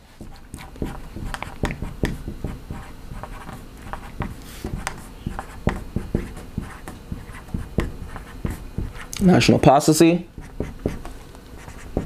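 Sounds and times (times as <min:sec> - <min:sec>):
faint low room noise: 0:00.0 - 0:12.0.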